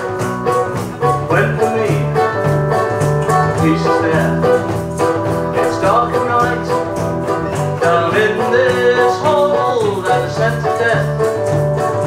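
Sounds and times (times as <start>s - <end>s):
electric bass line: 0.0s - 12.0s
strummed acoustic guitar: 0.0s - 12.0s
person singing: 1.1s - 12.0s.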